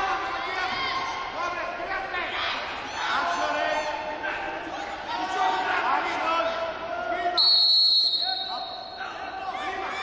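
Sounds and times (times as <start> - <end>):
voices calling out in a hall: 0.0 - 10.0
referee's whistle blast: 7.4 - 9.0.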